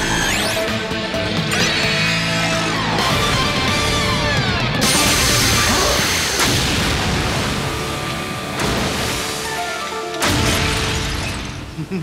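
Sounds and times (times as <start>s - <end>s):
action background music: 0.0s - 11.8s.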